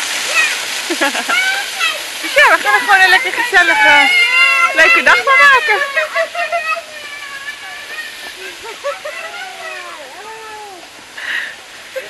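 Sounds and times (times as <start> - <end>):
woman speaking: 2.4 - 5.9.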